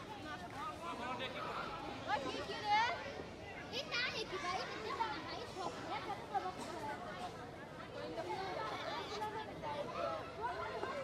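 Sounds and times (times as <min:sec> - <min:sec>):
children chattering and calling out: 0:00.0 - 0:11.0.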